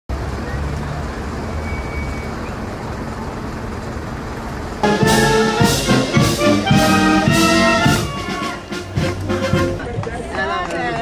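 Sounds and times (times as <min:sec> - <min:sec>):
crowd chatter: 0:00.1 - 0:11.0
traffic noise: 0:00.1 - 0:11.0.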